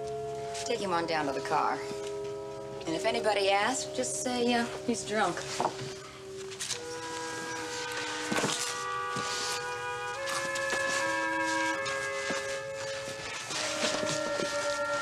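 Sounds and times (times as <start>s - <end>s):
dramatic score held chords: 0.0s - 15.0s.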